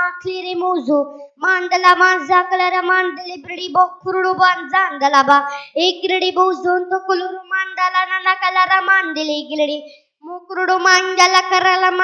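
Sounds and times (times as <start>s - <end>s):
boy singing: 0.0s - 12.0s.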